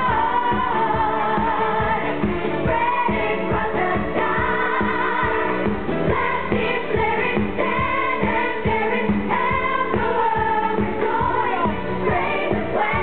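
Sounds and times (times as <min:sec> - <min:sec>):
chorus of women singing: 0:00.0 - 0:13.0
woman singing lead: 0:00.0 - 0:13.0.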